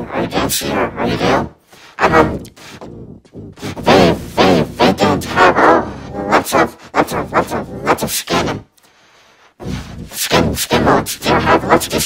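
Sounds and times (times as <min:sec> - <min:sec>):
person talking: 0:00.0 - 0:08.7, 0:09.6 - 0:12.0.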